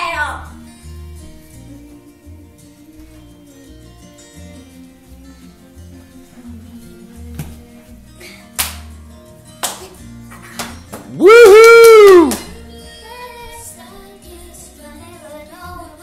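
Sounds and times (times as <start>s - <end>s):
acoustic country song playing: 0.0s - 16.0s.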